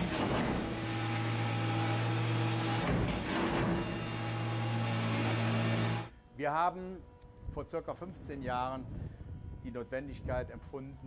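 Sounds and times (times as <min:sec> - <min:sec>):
rolling machine electric hum: 0:00.0 - 0:06.2.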